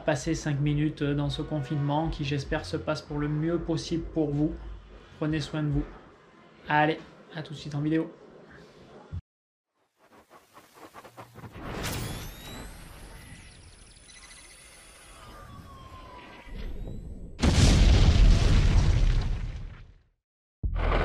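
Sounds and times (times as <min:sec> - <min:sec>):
explosion boom: 0:16.8 - 0:19.9.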